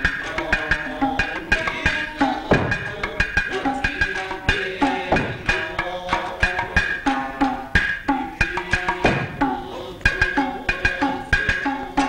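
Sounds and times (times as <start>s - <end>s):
plucked shamisen notes: 0.0s - 11.6s
hand drum strikes: 2.5s - 7.1s, 7.8s - 10.8s.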